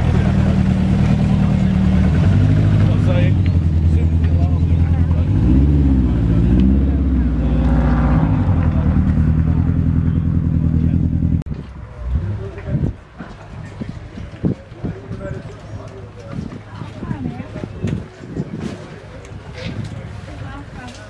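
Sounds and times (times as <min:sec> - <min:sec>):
car engine low burble: 0:00.0 - 0:16.3.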